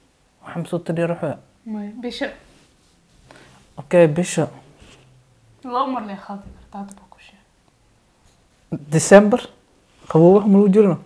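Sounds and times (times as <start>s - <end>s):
voices in conversation: 0.4s - 11.0s.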